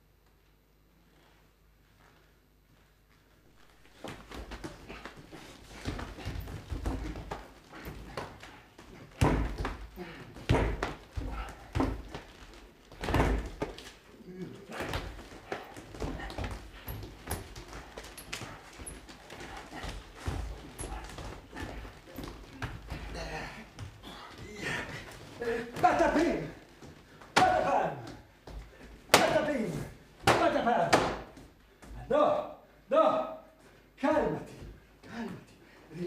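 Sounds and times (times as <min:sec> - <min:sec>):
thumps of feet on wooden stage: 0:03.6 - 0:14.0, 0:14.7 - 0:29.5.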